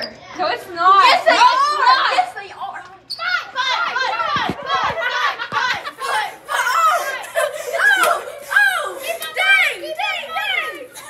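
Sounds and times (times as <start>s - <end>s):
children shrieking and shouting: 1.0s - 2.5s, 3.1s - 11.0s.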